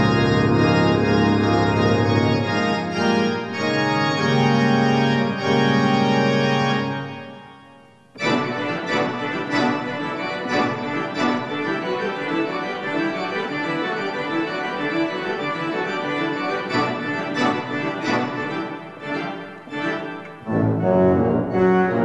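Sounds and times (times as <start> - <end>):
pipe organ playing: 0.0 - 22.0.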